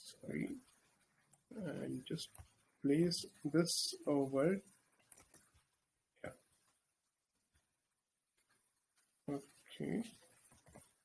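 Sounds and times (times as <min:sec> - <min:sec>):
faint keyboard typing: 0:00.0 - 0:11.0.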